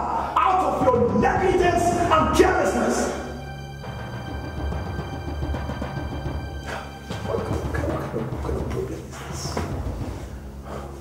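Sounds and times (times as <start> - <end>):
dramatic film score: 0.0 - 11.0.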